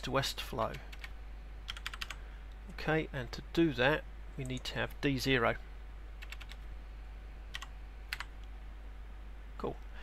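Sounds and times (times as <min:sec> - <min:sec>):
computer keyboard typing: 0:00.6 - 0:01.1, 0:01.7 - 0:02.2, 0:06.2 - 0:06.6, 0:07.5 - 0:08.4.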